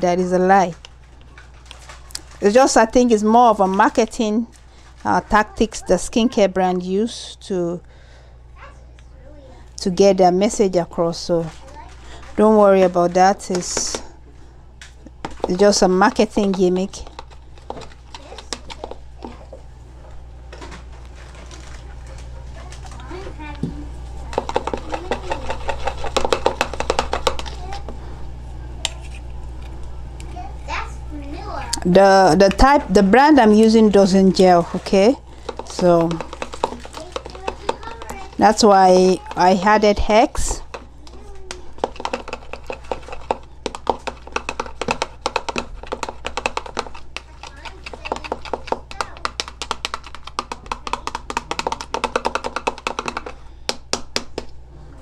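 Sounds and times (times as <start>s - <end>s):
low steady hum: 0.0s - 55.0s
utensil ticking against bowl: 35.4s - 38.6s, 41.8s - 53.4s.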